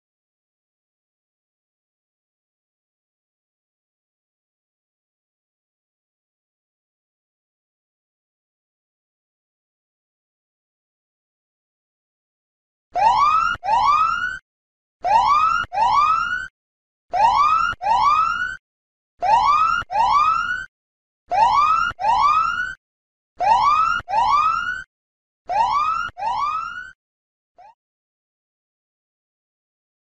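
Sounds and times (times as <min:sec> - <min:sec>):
electronic whooping alarm: 0:13.0 - 0:14.4, 0:15.0 - 0:16.5, 0:17.1 - 0:18.6, 0:19.2 - 0:20.7, 0:21.3 - 0:22.8, 0:23.4 - 0:24.9, 0:25.5 - 0:27.0.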